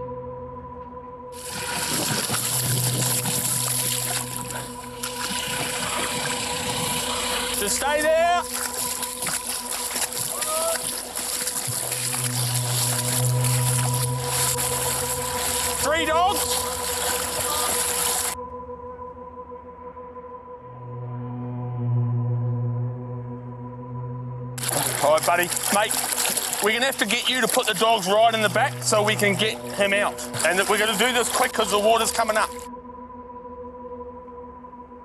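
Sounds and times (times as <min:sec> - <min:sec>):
low droning music: 0:00.0 - 0:35.0
wind and floodwater rushing: 0:01.4 - 0:18.4, 0:24.6 - 0:32.6.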